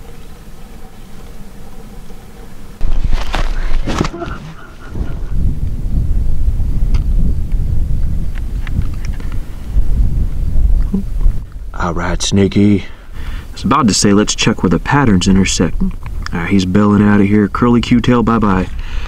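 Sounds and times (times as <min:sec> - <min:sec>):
wind buffeting microphone: 0:02.8 - 0:19.0.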